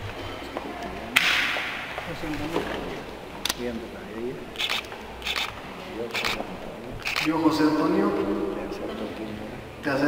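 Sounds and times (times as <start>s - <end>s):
sharp crack: 1.2s - 2.0s.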